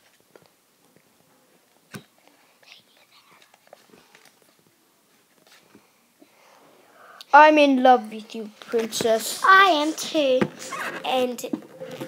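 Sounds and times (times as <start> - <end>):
person whispering: 2.6 - 3.6.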